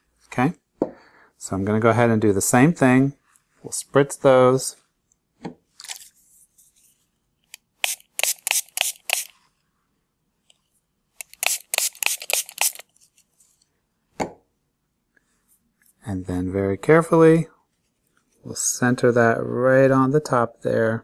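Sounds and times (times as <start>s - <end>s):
spray bottle misting: 7.8s - 9.4s, 11.2s - 12.9s.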